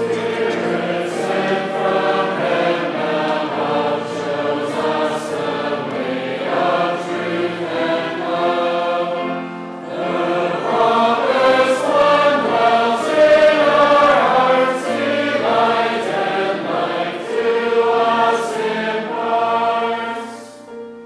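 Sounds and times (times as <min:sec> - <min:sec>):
congregation singing a hymn: 0:00.0 - 0:20.9.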